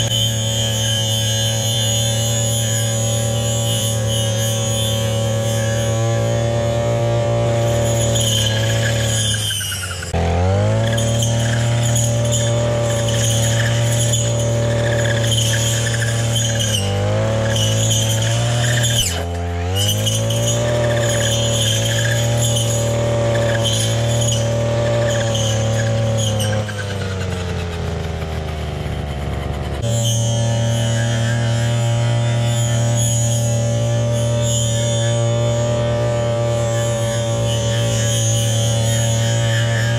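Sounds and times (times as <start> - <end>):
blade cutting weeds: 0.0 - 39.9
brush cutter engine: 0.0 - 39.9.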